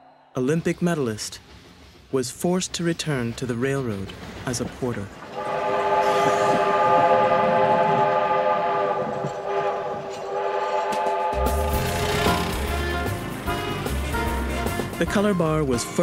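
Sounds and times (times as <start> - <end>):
train whistle blowing: 5.4 - 13.1.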